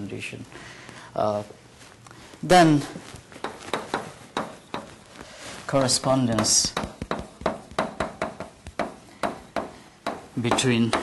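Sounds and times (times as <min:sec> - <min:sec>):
chalk tapping on blackboard: 0:03.4 - 0:05.0, 0:06.2 - 0:11.0.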